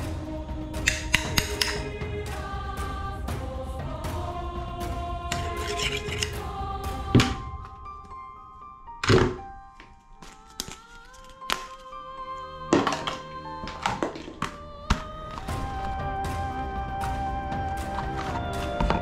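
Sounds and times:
background music with held notes: 0.0 - 19.0
plastic toys thunking on a table: 9.0 - 9.4.

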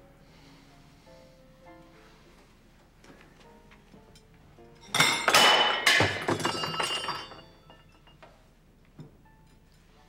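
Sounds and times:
glassware and dishes crashing: 4.8 - 8.2
glass clinking and ringing: 4.8 - 8.4.

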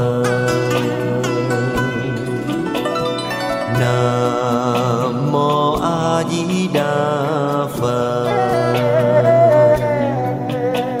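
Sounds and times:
person singing devotional chant: 0.0 - 2.6, 3.7 - 11.0
instrumental accompaniment: 0.0 - 11.0.

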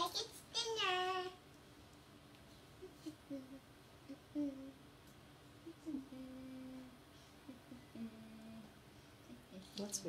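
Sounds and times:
boy making vocal sounds: 2.8 - 4.8, 5.7 - 8.7
boy singing drawn-out note: 5.7 - 6.9.

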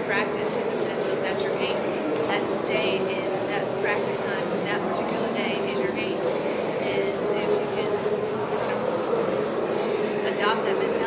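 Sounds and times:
woman speaking into a microphone: 0.0 - 8.8, 10.2 - 11.0
steady low room hum: 0.0 - 11.0.

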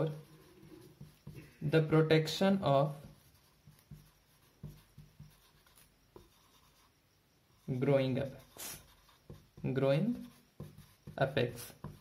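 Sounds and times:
marker writing on paper: 0.0 - 1.5, 2.9 - 6.9, 7.6 - 12.0.

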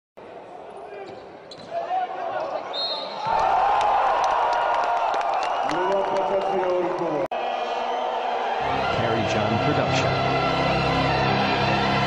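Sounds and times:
crowd voices echoing in hall: 0.2 - 12.0.

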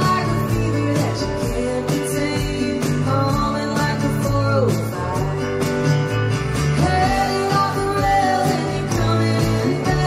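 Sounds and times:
live country-folk band: 0.0 - 10.0.

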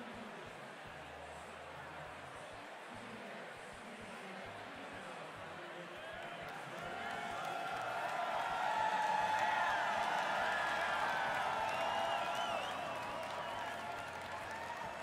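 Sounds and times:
crowd voices: 0.0 - 15.0
crowd cheering and whooping: 6.5 - 15.0
crowd whistling: 9.0 - 15.0.

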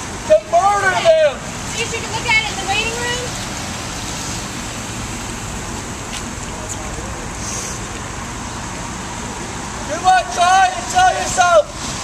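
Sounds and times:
tyres hissing on wet pavement: 0.0 - 12.0.

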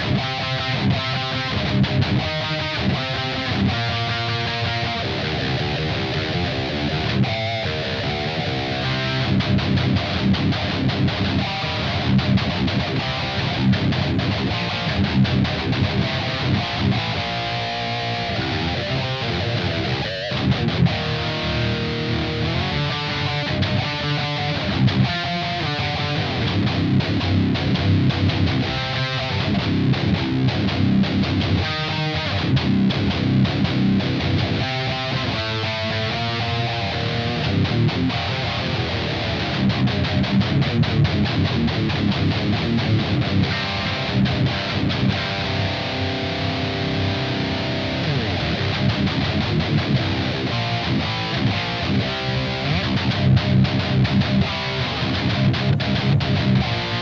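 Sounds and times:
distorted electric guitar riffs: 0.0 - 57.0.

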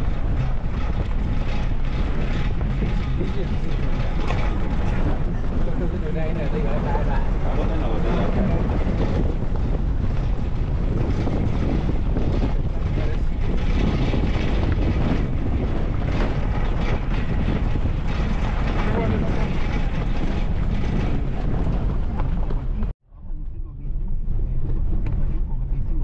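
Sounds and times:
vehicle driving on dirt road: 0.0 - 26.0
wind buffeting microphone: 0.0 - 26.0.

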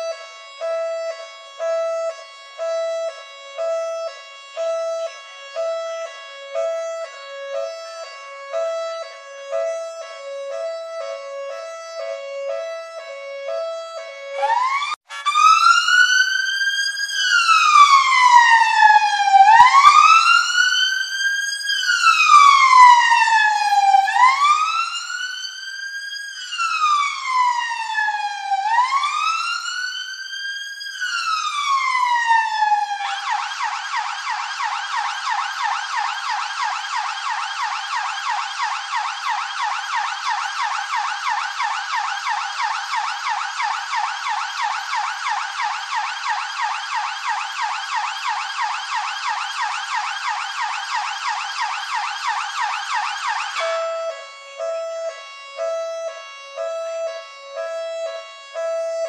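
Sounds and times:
police siren wailing and yelping: 0.0 - 59.0.

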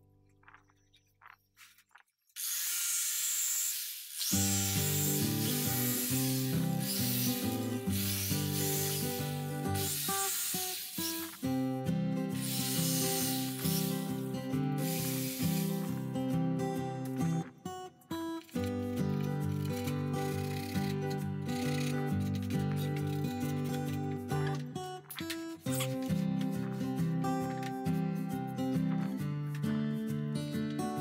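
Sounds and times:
electric jigsaw cutting board: 2.4 - 11.5, 12.4 - 14.2, 14.8 - 16.0, 18.6 - 23.2
music with plucked bass line: 25.7 - 31.0.

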